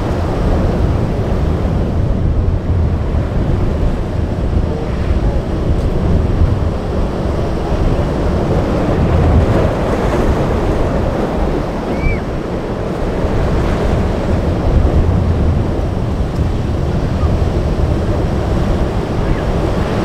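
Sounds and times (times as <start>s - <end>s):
rough surf breaking: 0.0s - 20.0s
wind buffeting microphone: 0.0s - 20.0s.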